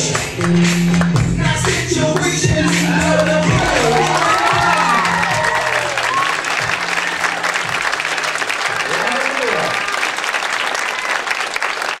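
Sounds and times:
dance music: 0:00.0 - 0:09.8
audience applauding: 0:00.0 - 0:12.0.

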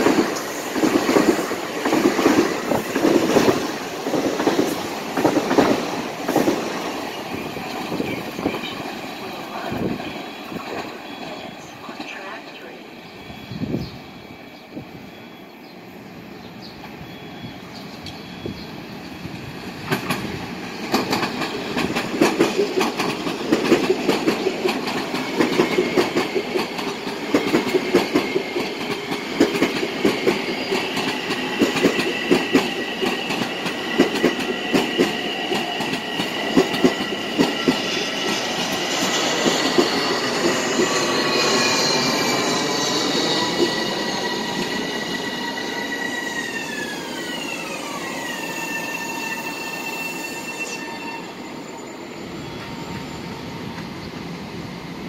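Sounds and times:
train wheels clickety-clack: 0:00.0 - 0:12.4, 0:19.8 - 0:49.2, 0:52.6 - 0:54.4
train high whine: 0:00.0 - 0:55.0.

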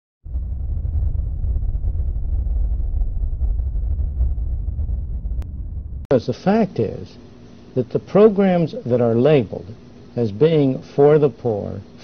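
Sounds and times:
deep rumbling drone: 0:00.2 - 0:06.1.

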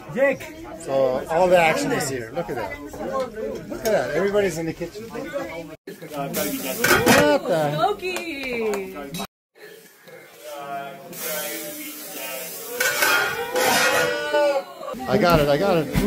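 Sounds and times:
voices talking: 0:00.0 - 0:16.0.

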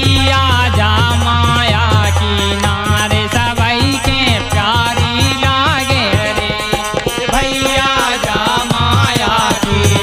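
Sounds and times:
hand drum strokes: 0:00.0 - 0:10.0
harmonium: 0:00.0 - 0:10.0
men singing: 0:00.0 - 0:10.0
small hand percussion: 0:00.0 - 0:10.0.

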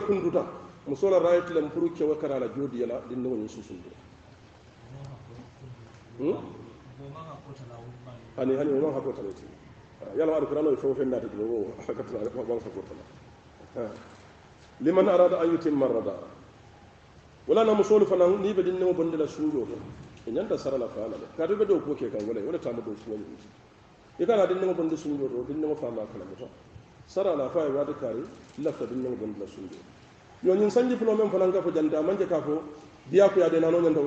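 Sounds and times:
man preaching: 0:00.0 - 0:03.9, 0:30.4 - 0:34.0.

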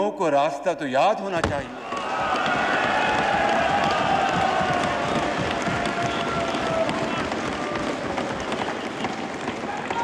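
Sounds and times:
crowd cheering and shouting: 0:01.8 - 0:10.0.

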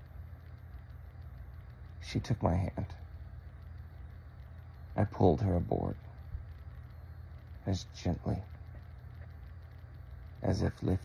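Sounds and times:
faint hiss: 0:00.0 - 0:11.0
steady low hum: 0:00.0 - 0:11.0.

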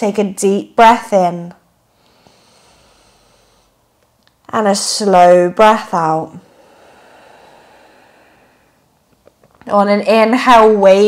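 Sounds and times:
faint slow exhale: 0:01.9 - 0:03.9, 0:06.4 - 0:08.9.

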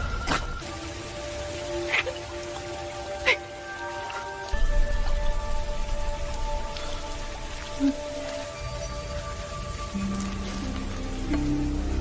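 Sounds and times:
water dripping: 0:00.0 - 0:12.0.

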